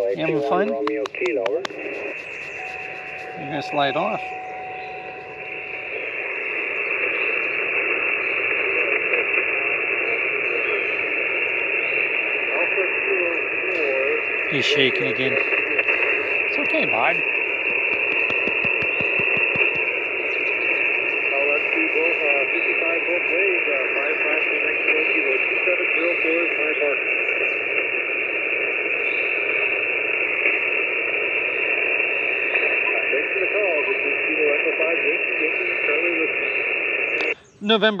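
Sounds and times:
faint voice over radio: 0.0 - 5.8, 8.6 - 11.2, 12.4 - 17.2, 21.3 - 27.2, 32.6 - 36.5
radio static hiss: 0.0 - 38.0.

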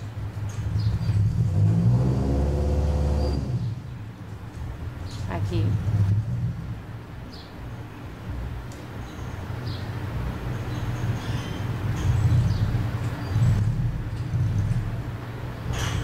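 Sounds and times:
low background rumble: 0.0 - 16.0.

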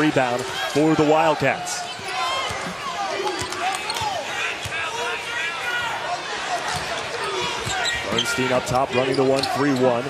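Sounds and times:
sneakers squeaking on hardwood: 6.7 - 10.0.

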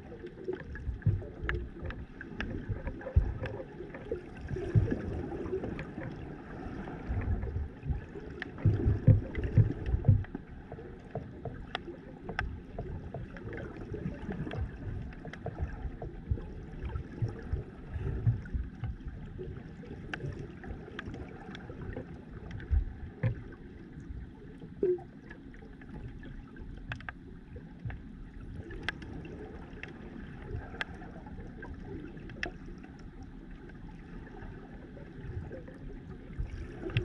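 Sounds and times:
underwater rumbling water surges: 0.0 - 37.0
underwater thumps: 0.6 - 5.8, 7.1 - 19.2, 21.9 - 23.6.

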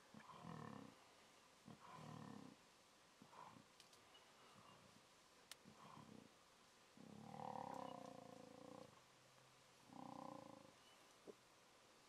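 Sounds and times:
lion calling faintly: 5.6 - 9.0.

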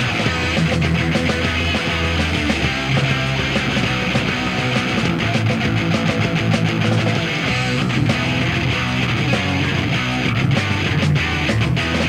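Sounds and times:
punk rock band playing: 0.0 - 12.0
strummed electric guitar: 0.0 - 12.0.

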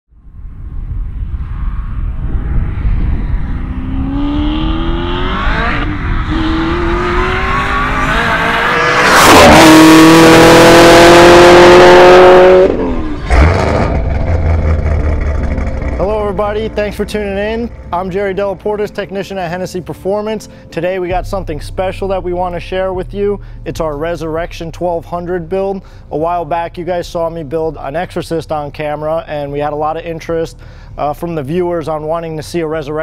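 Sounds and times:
car engine accelerating hard: 1.3 - 17.9.

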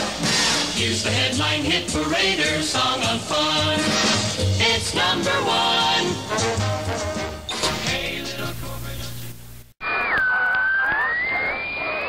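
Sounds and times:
high whistle-like tone: 9.8 - 12.0.

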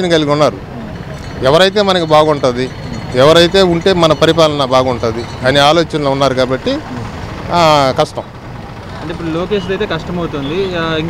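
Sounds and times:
street traffic: 0.0 - 11.0.

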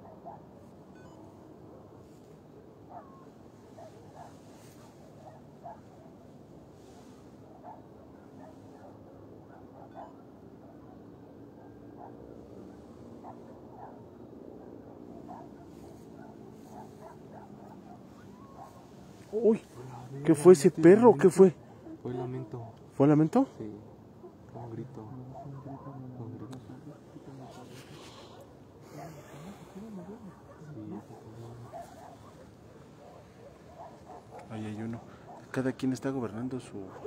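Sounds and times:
distant dog barks: 0.0 - 37.0
faint howl-like wail: 2.9 - 20.3, 21.6 - 35.6.

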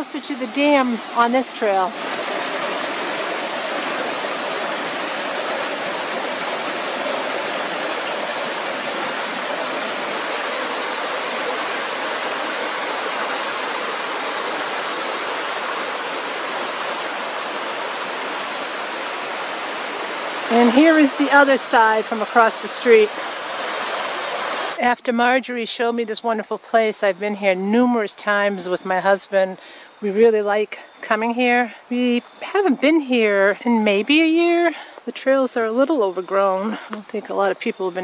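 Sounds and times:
river water rushing over boulders: 0.0 - 24.8.

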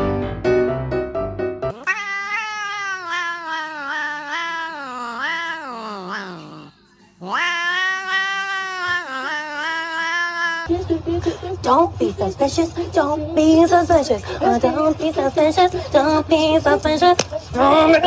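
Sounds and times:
piano music: 0.0 - 1.8
cat yowling: 1.7 - 10.7.

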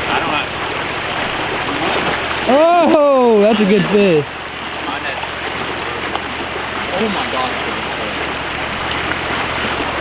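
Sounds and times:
creek flowing over rocks: 0.0 - 10.0.

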